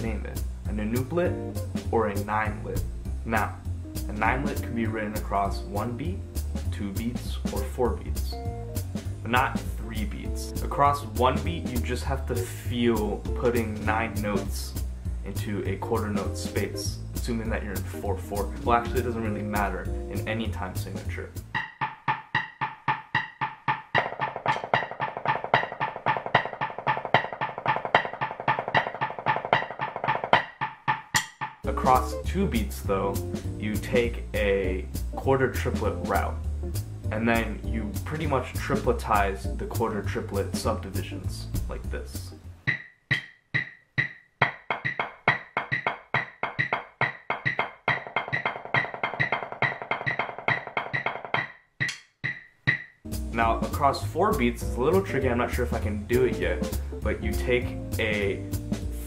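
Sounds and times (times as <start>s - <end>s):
metronome clicking: 21.5s - 32.2s, 42.7s - 53.0s
drumsticks striking fast: 21.6s - 32.1s, 42.7s - 52.9s.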